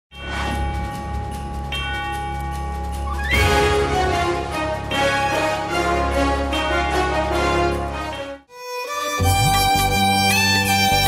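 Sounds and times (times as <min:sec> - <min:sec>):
theme music with held chords: 0:00.1 - 0:11.0.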